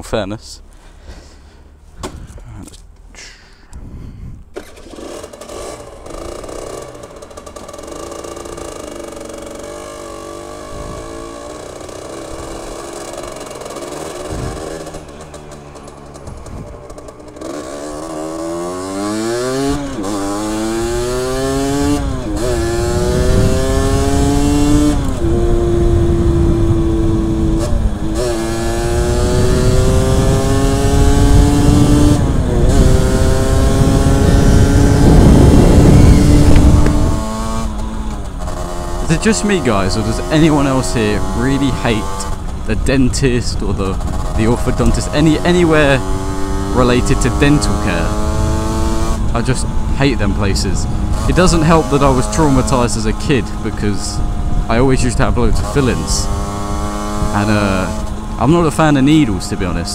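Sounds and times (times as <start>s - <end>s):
wind noise on microphone: 3.7s - 4.6s, 10.6s - 11.2s, 14.1s - 15.0s, 16.2s - 17.0s, 20.3s - 39.0s, 42.0s - 45.0s, 45.9s - 51.4s, 53.4s - 58.4s
motorcycle engine accelerating: 4.5s - 59.9s.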